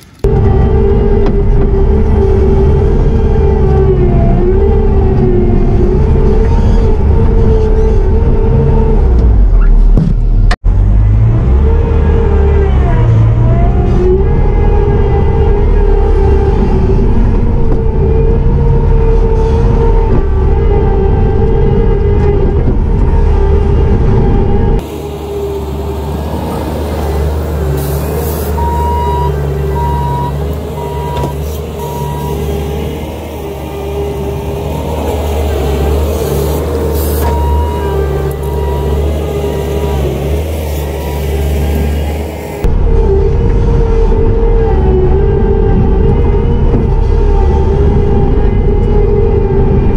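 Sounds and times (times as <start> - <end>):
diesel engine and hydraulics whining: 0.0 - 49.9
reverse alarm beeping: 28.5 - 32.5, 37.2 - 39.1.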